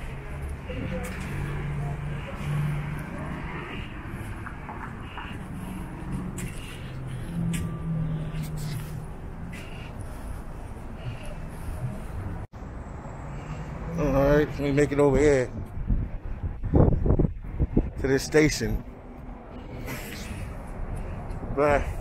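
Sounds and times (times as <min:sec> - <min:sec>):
car engines passing: 0:00.0 - 0:22.0.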